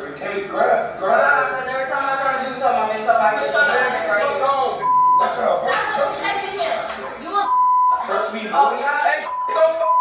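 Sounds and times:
people talking: 0.0 - 10.0
censor bleep: 4.8 - 5.4, 7.5 - 8.1, 9.2 - 10.0.

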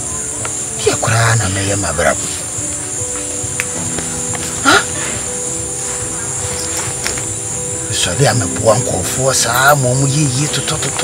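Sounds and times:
insect chirring: 0.0 - 11.0
music of held low tones: 0.0 - 11.0.

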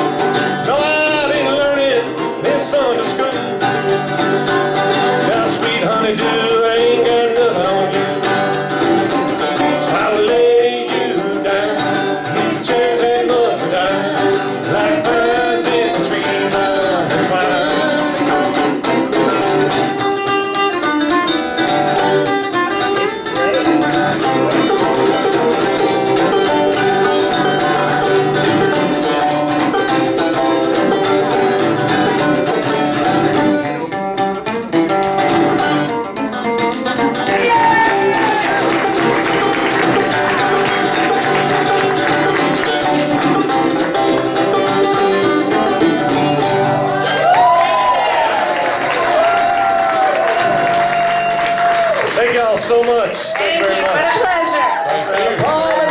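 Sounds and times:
banjo playing: 0.0 - 52.3
resonator guitar: 0.0 - 54.0.

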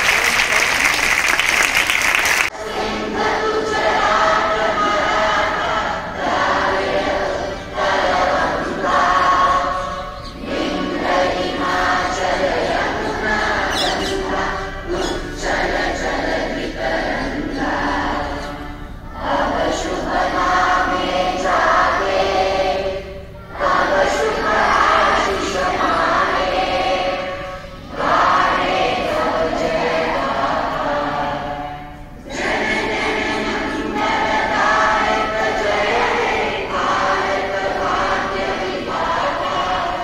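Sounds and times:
group singing in unison: 2.3 - 40.0.

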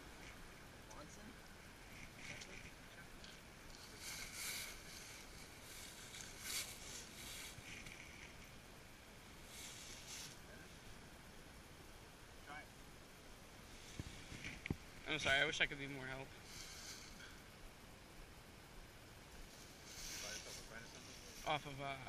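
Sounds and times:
outdoor background hiss: 0.0 - 22.0
soft rustling: 1.8 - 8.6, 9.3 - 11.0, 13.6 - 15.6, 16.4 - 17.4, 19.3 - 22.0.

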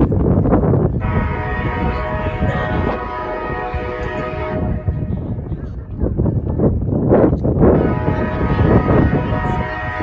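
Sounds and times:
train air horn: 1.0 - 5.2, 7.8 - 10.0.

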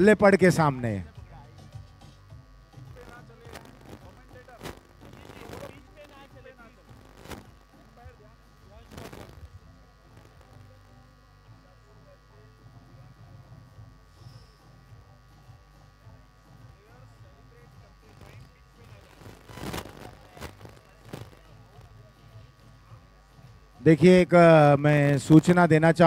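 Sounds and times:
electrical hum: 0.0 - 26.0.

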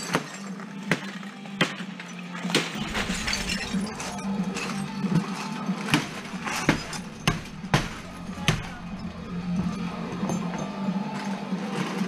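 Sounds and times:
shards clattering and clinking: 2.1 - 12.0
dishware smashing: 2.7 - 11.2.

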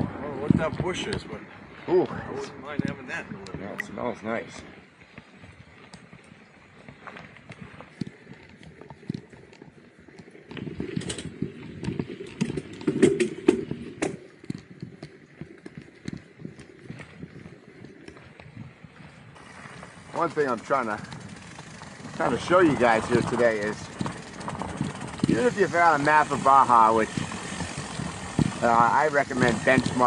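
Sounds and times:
mountain bike rattling on rough trail: 2.6 - 30.0.

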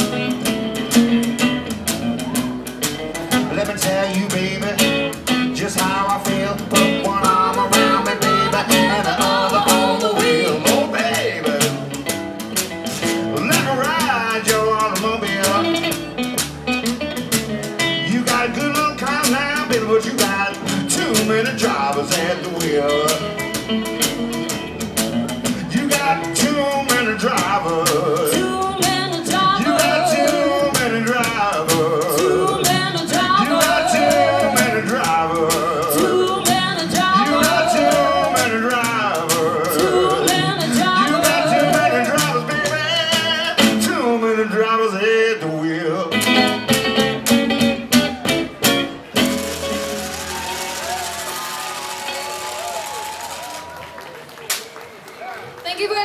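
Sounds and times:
person singing blues: 0.0 - 53.7
acoustic guitar: 0.0 - 53.9
audience applause: 49.1 - 56.0.

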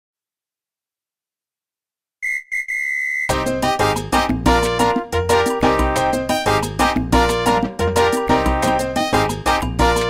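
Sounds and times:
whistle blasts: 2.2 - 3.4.

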